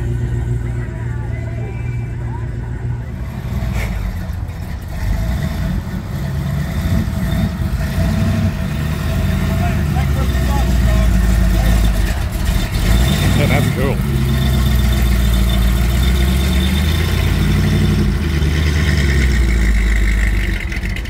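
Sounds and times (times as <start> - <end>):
car engine with deep exhaust: 0.0 - 21.0.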